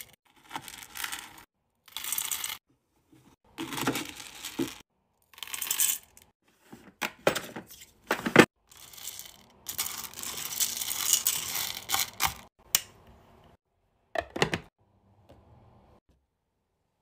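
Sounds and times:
wax beads rattling in metal pot: 0:08.7 - 0:12.2.

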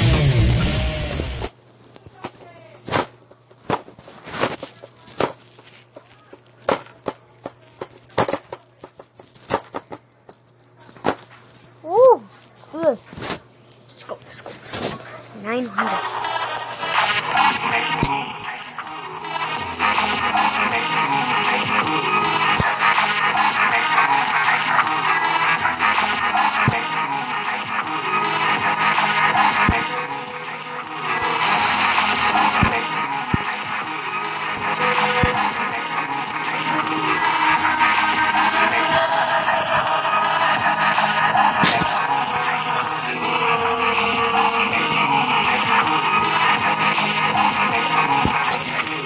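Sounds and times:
guitar loop: 0:00.0 - 0:01.4, 0:15.9 - 0:49.0
electronic loop music: 0:15.4 - 0:49.0
noise and stab effects: 0:15.8 - 0:49.0.

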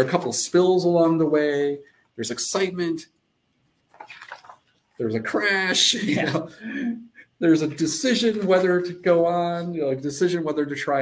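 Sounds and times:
paper pages rustling: 0:03.8 - 0:05.0.

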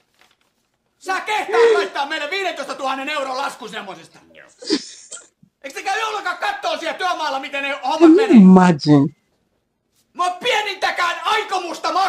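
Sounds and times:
comedy sketch dialogue: 0:01.0 - 0:09.1.

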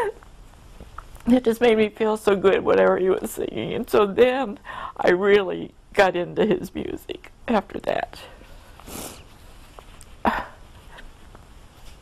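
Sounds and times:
woman sniffling: 0:08.7 - 0:09.3, 0:10.2 - 0:11.1.

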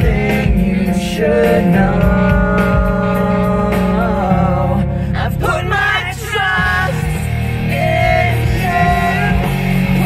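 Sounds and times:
man and woman singing: 0:00.0 - 0:10.0
rock song: 0:00.0 - 0:10.0.

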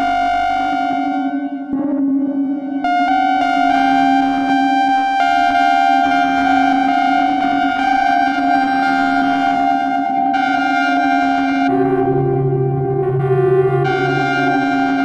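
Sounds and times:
low synthesizer drone: 0:00.0 - 0:15.0
bright synthesizer tones: 0:08.5 - 0:15.0.

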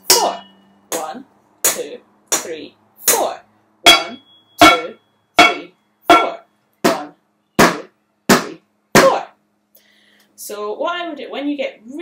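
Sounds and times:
high metallic ring: 0:00.0 - 0:00.9, 0:03.8 - 0:06.6
wooden spoons beating pans: 0:00.0 - 0:01.1, 0:03.9 - 0:09.2.

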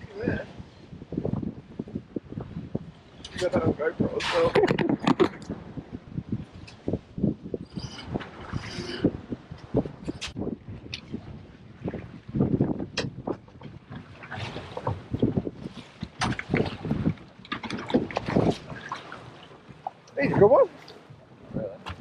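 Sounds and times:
wind buffeting microphone: 0:00.0 - 0:22.0
water slapping against boat hull: 0:03.2 - 0:07.0, 0:08.0 - 0:22.0.

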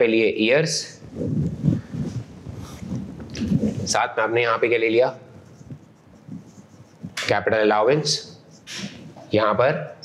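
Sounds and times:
marker scraping on whiteboard: 0:05.3 - 0:07.4, 0:08.0 - 0:10.0.

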